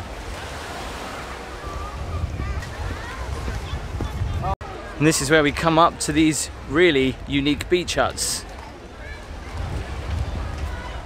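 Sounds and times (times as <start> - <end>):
wind rumbling on microphone: 0.0 - 4.6, 5.4 - 11.0
steady outdoor hiss: 0.0 - 11.0.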